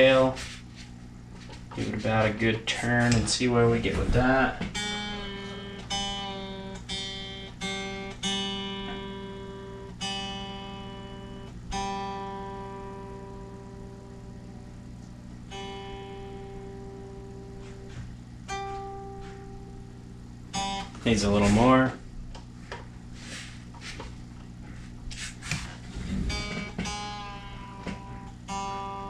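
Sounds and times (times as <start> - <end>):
electric guitar string plucked: 1.8 - 21.7, 25.8 - 29.0.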